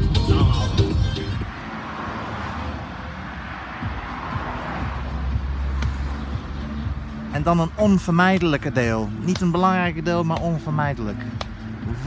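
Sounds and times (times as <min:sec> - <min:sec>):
loud dance music: 0:00.0 - 0:01.5
road and vehicle noise: 0:00.0 - 0:12.0.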